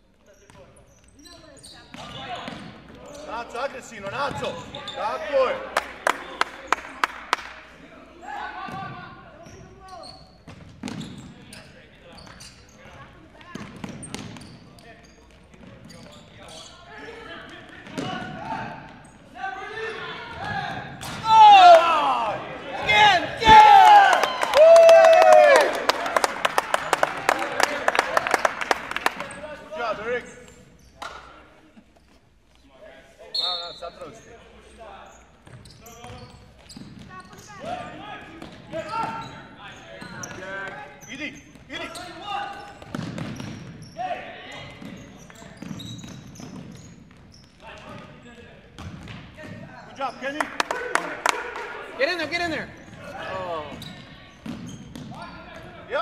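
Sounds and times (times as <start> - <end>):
sneakers squeaking on a gym floor: 0.0 - 5.5, 8.2 - 21.3, 28.4 - 50.4, 52.0 - 56.0.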